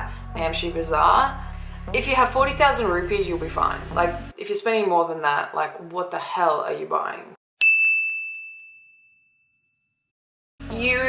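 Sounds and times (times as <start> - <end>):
bell-like ding: 7.6 - 10.0.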